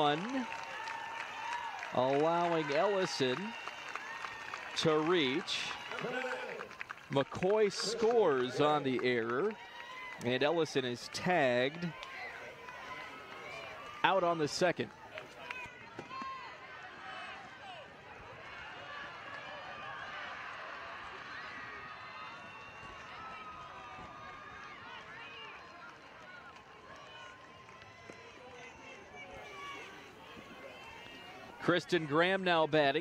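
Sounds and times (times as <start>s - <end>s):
spectators chatter and calls: 0.0s - 33.0s.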